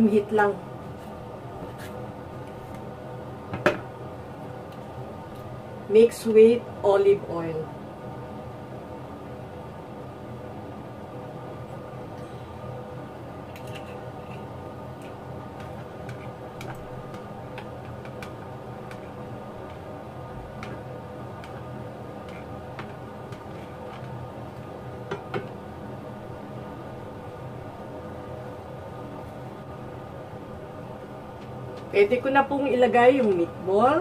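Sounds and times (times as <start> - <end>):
steady hum: 0.0 - 34.0.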